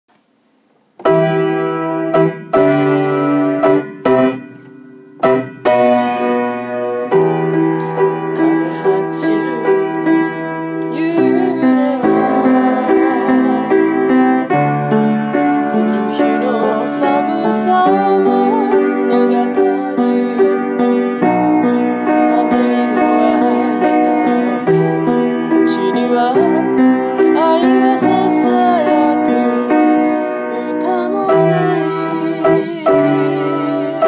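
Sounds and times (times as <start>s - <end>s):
upright piano playing: 1.0s - 34.0s.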